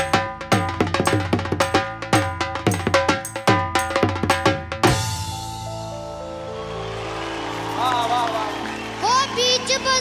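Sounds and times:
dhol drum beating fast rhythm: 0.0s - 5.6s.

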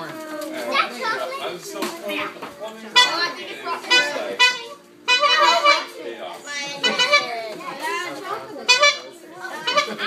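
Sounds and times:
children shouting and chattering: 0.0s - 10.0s.

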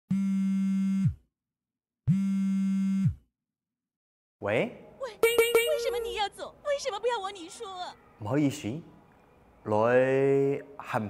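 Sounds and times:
buzzy phone call-tone beeps: 5.2s - 6.2s.

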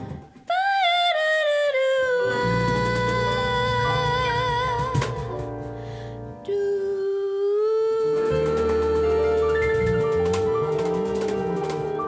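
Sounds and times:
woman singing with vibrato: 0.0s - 5.6s, 6.4s - 12.0s
latin jazz band playing: 8.1s - 12.0s.

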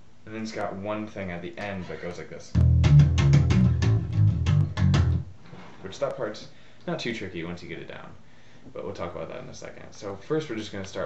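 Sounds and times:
funky electric bass run: 2.6s - 5.3s.

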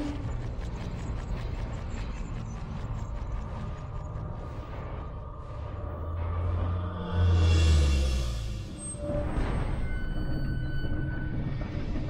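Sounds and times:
low mechanical rumble: 0.0s - 12.0s.

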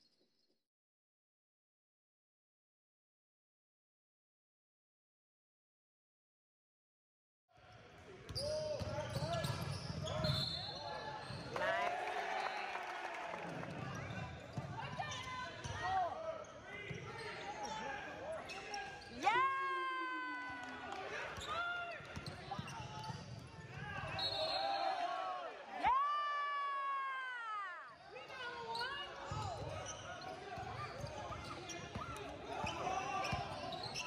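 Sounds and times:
voices of players and spectators: 7.5s - 34.0s
sneakers squeaking: 8.3s - 11.5s, 13.9s - 19.3s, 21.2s - 25.0s, 27.9s - 34.0s
referee's whistle: 8.4s - 11.0s, 24.0s - 25.3s.

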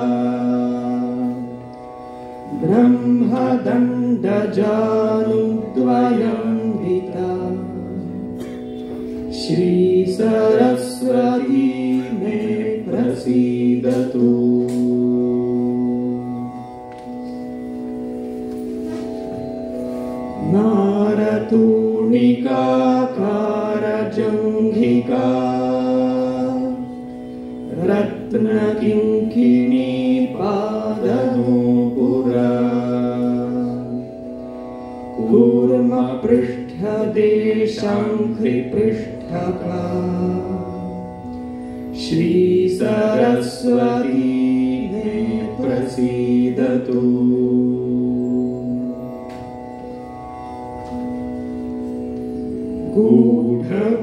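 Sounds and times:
organ-like drone: 0.0s - 54.0s.

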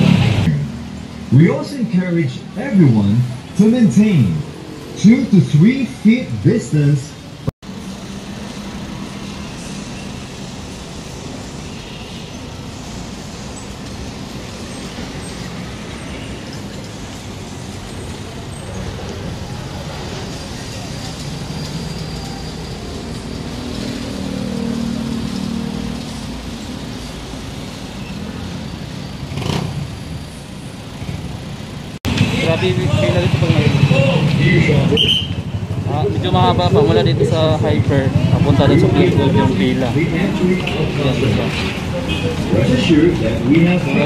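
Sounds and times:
cars and motorcycles passing: 0.0s - 44.0s.

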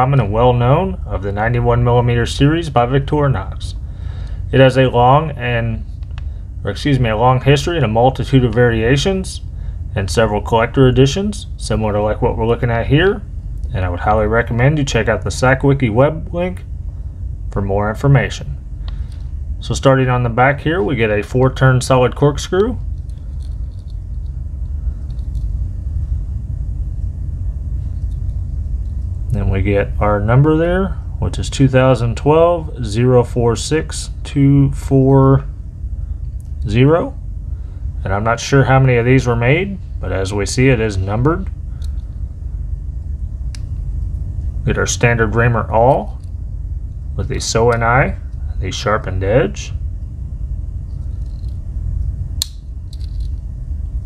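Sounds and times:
low background rumble: 0.0s - 54.0s.

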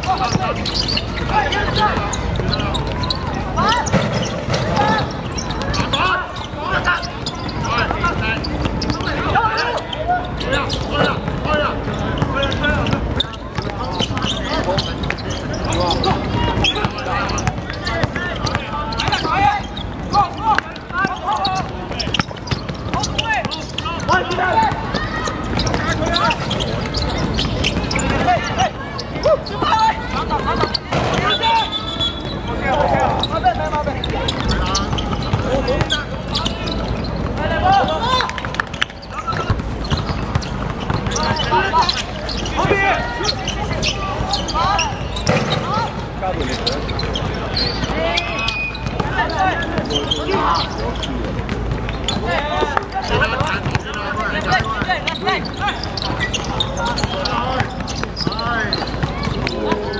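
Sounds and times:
players shouting: 0.0s - 59.9s
basketball bouncing on hard court: 7.2s - 9.4s, 10.7s - 29.1s, 34.0s - 42.8s, 51.0s - 52.3s, 53.0s - 59.9s.

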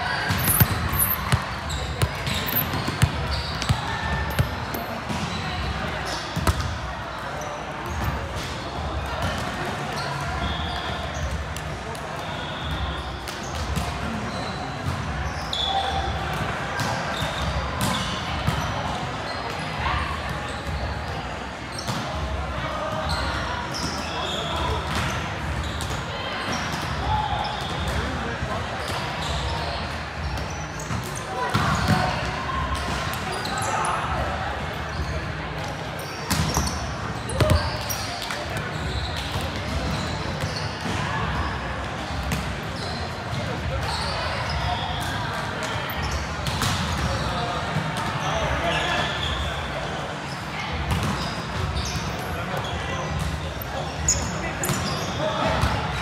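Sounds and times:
players' voices echoing: 0.0s - 56.0s
volleyballs bouncing and struck: 0.2s - 6.9s.

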